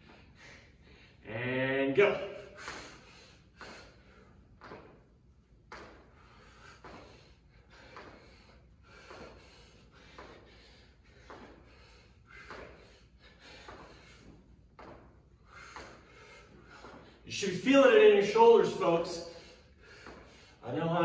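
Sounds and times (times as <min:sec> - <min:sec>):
hard breathing: 0:00.0 - 0:01.2, 0:02.2 - 0:05.0, 0:05.8 - 0:20.7.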